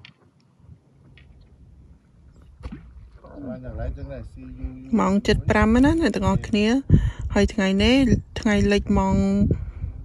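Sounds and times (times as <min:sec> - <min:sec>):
low steady rumble: 0:00.6 - 0:10.0
person talking: 0:04.9 - 0:09.5.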